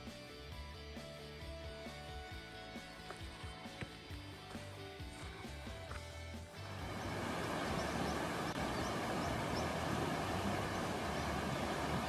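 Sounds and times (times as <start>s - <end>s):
soft background music: 0.0s - 12.0s
river rushing over rapids: 6.6s - 12.0s.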